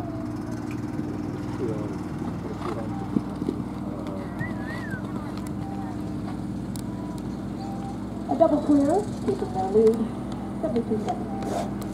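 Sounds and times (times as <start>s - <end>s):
motor humming: 0.0s - 11.9s
faint voices: 1.5s - 6.5s.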